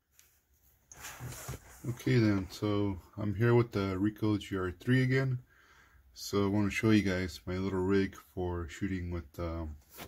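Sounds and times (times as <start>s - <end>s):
man speaking: 1.8s - 5.4s, 6.2s - 9.8s.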